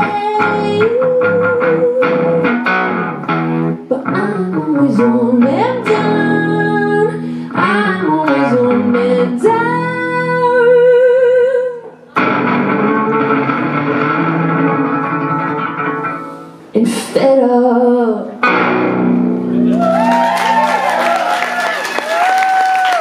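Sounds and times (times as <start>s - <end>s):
woman singing: 0.0s - 2.7s, 3.9s - 12.0s, 16.8s - 18.4s
strummed guitar: 0.0s - 11.0s, 12.1s - 16.8s, 18.4s - 19.8s
audience applauding and cheering: 19.7s - 23.0s.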